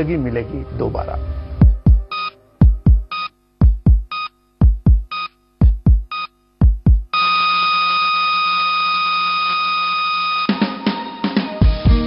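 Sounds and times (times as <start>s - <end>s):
flatline tone: 1.0s - 10.7s
heartbeat thump: 1.6s - 7.1s
heart monitor beep: 1.6s - 10.5s.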